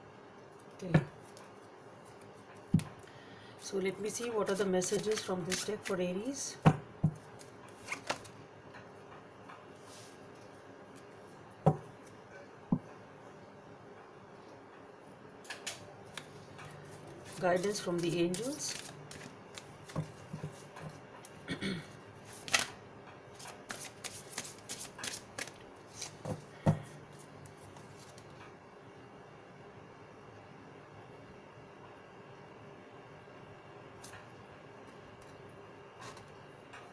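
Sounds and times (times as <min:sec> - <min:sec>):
cards shuffled by hand: 0:04.1 - 0:06.0, 0:07.3 - 0:08.3, 0:16.1 - 0:21.4, 0:22.2 - 0:26.4.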